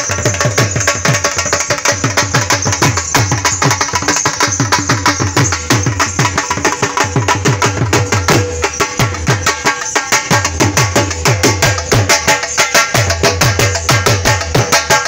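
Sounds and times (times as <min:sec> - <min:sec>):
barrel drums beaten fast: 0:00.0 - 0:15.0.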